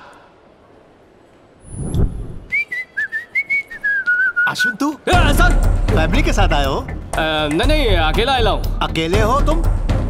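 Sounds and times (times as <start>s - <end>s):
short low whoosh: 1.6s - 2.5s
person whistling a tune: 2.5s - 4.7s.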